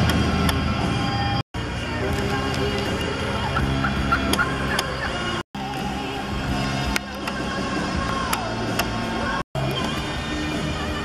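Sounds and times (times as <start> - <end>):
turkeys calling: 2.4 - 5.4.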